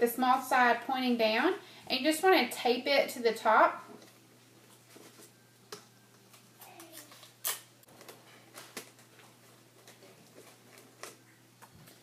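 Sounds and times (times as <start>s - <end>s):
tape and paper rustling: 6.3s - 12.0s.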